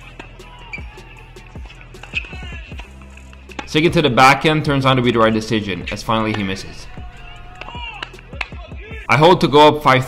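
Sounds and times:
distant voices calling out: 4.9 - 9.1.

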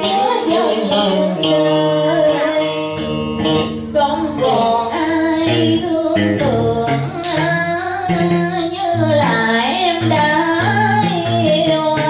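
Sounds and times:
instrumental accompaniment: 0.0 - 12.0
woman singing: 0.0 - 12.0.

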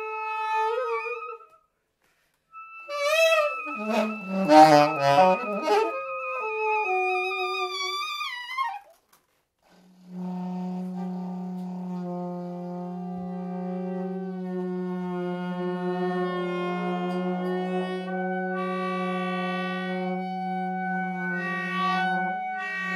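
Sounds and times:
saxophones improvising: 2.5 - 8.9, 10.1 - 22.9.

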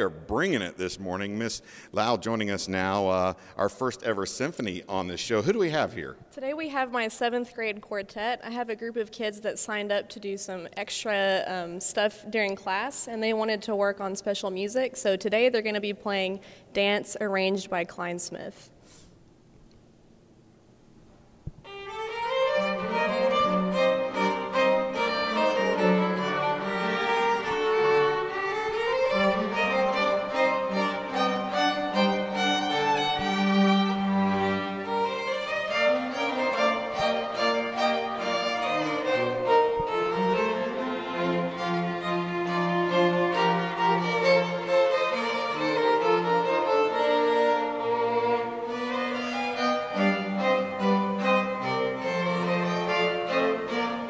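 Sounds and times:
string quartet playing: 21.7 - 54.0.

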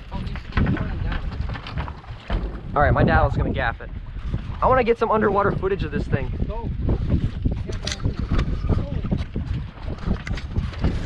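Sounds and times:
water sloshing against boat hull: 0.0 - 11.0
wind buffeting microphone: 0.0 - 11.0
knocks and clatter on deck: 0.2 - 3.2.

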